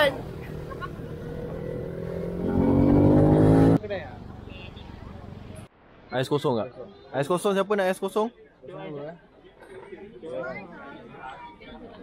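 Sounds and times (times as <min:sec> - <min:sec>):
motorcycle engine accelerating: 0:00.0 - 0:05.7.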